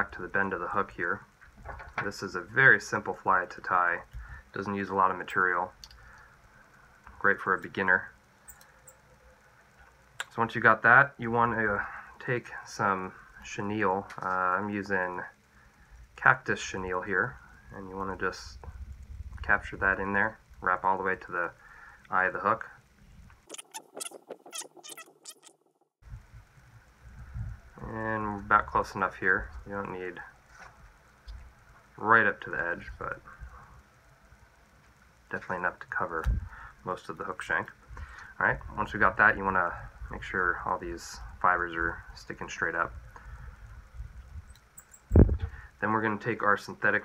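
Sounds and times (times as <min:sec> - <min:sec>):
small ticks: 0:05.8 - 0:10.4, 0:23.2 - 0:28.6, 0:30.5 - 0:38.4, 0:43.0 - 0:45.8
low rumble: 0:26.0 - 0:29.8.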